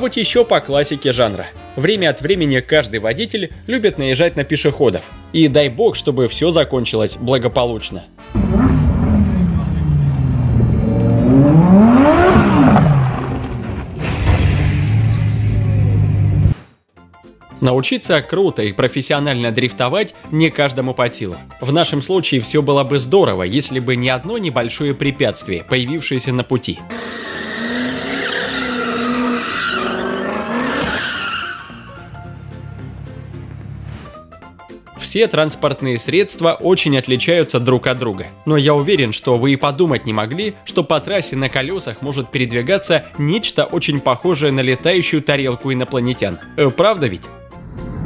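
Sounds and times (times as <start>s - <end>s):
sports car engine revving: 8.3s - 16.5s
tyres squealing: 26.9s - 31.9s.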